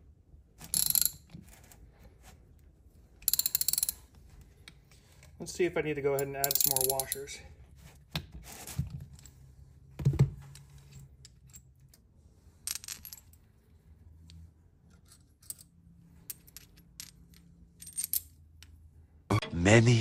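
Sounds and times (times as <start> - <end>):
metal parts clinking: 0.7 - 1.5, 3.2 - 4.1, 6.1 - 7.3, 14.9 - 18.4.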